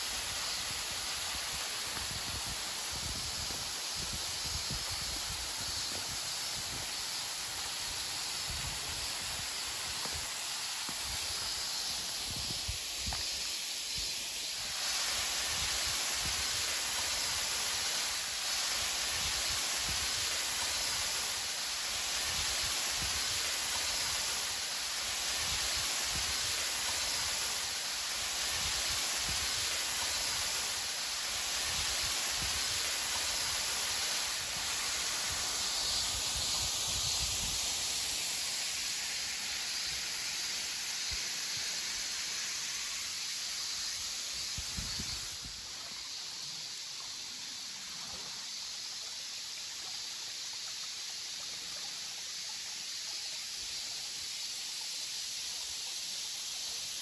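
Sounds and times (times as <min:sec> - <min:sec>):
small waterfall hissing: 0:00.0 - 0:57.0.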